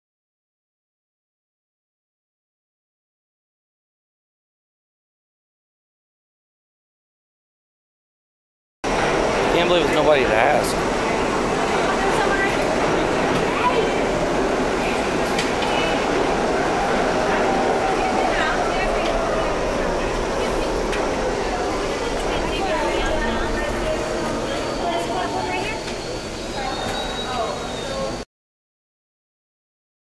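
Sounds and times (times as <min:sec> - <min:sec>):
subway train rumble: 0:08.8 - 0:28.2
train motor whine: 0:08.9 - 0:28.2.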